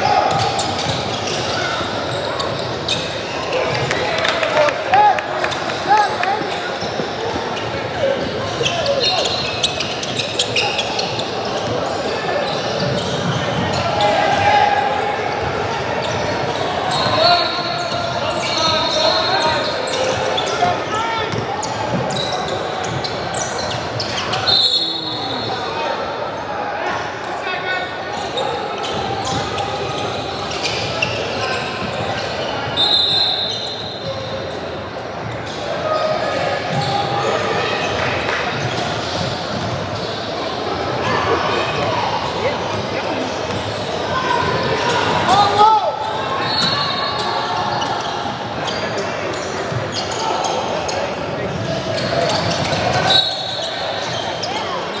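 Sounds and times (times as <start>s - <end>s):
referee's whistle blasts: 24.3s - 25.6s, 32.8s - 34.1s, 53.0s - 54.2s.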